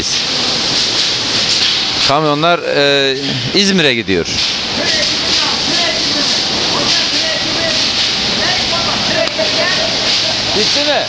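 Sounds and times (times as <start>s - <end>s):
loud machinery hiss: 0.0s - 11.0s
people's voices: 2.1s - 11.0s.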